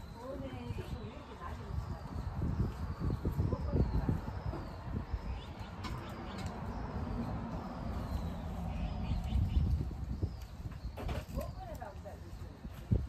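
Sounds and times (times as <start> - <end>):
leaves rustling and snapping: 10.4 - 12.0.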